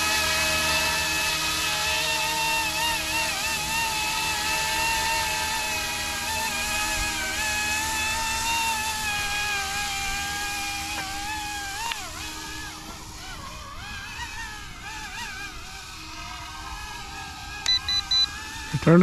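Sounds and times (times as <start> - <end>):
rc helicopter motor whine: 0.0 - 19.0.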